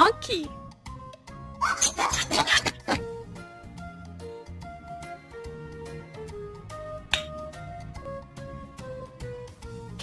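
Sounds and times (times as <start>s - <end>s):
light children's music: 0.0s - 10.0s.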